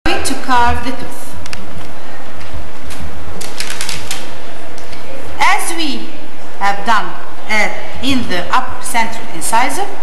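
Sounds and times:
electrical hum and hiss: 0.1 - 10.0.

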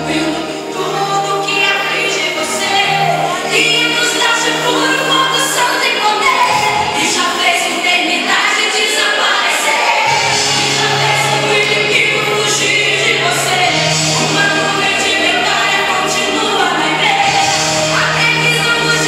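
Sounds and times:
gospel song with vocals: 0.0 - 19.0.

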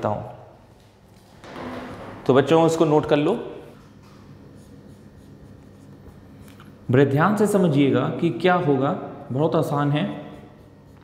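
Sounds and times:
marker writing on whiteboard: 4.0 - 6.8, 10.1 - 11.0.

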